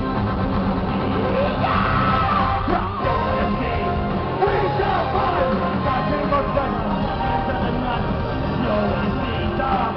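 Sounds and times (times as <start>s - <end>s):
metal band playing: 0.0s - 9.9s.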